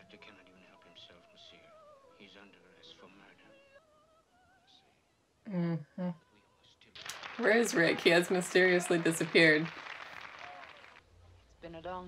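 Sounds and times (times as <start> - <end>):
quiet dialogue: 5.5 - 9.9.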